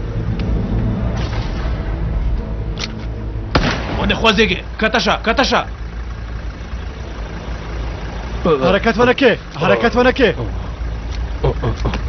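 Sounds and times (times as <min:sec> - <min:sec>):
steady low rumble: 0:00.0 - 0:12.0
men shouting: 0:08.3 - 0:10.7.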